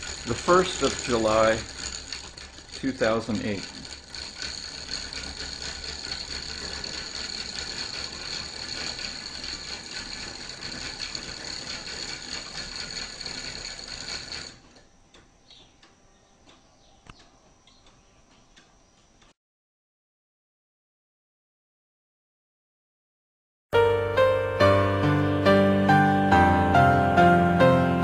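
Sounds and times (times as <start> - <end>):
wooden gears clattering: 0.0 - 14.9
faint ticks: 14.8 - 19.4.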